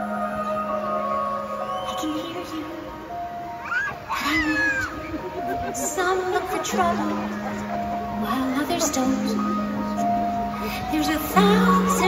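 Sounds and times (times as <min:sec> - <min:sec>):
music in an arena: 0:00.0 - 0:12.0.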